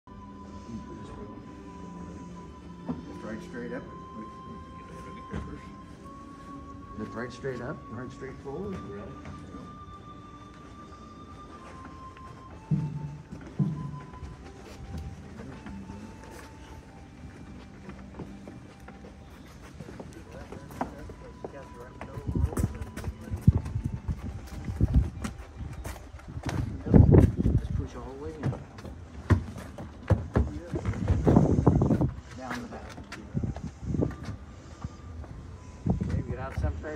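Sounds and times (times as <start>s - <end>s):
soft music with held notes: 0.1s - 36.9s
shuffling footsteps: 1.8s - 36.9s
knocks and bumps on wood: 28.4s - 32.0s.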